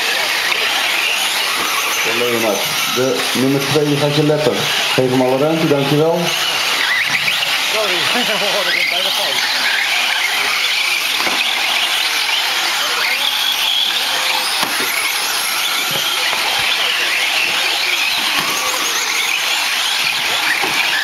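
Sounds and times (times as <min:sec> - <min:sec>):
high-pitched rc motor whine: 0:00.0 - 0:21.0.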